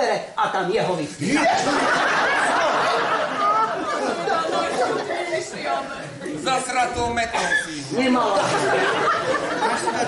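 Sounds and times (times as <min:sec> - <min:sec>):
overlapping voices talking in a hall: 0:01.2 - 0:10.0.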